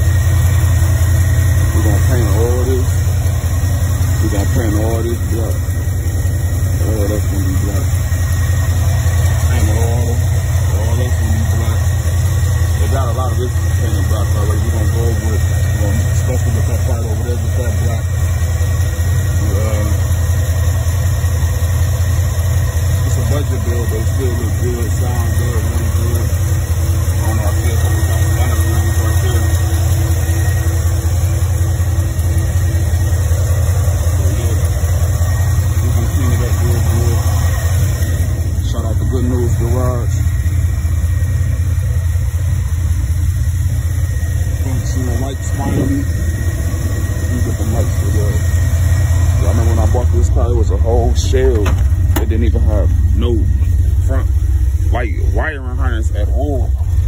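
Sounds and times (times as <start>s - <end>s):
voices talking: 0.0s - 21.1s, 21.7s - 57.0s
car engine idling: 0.0s - 57.0s.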